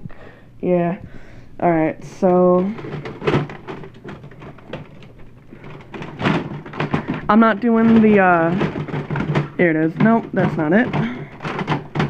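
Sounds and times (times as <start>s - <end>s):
plastic toys clattering in tub: 2.2s - 12.0s.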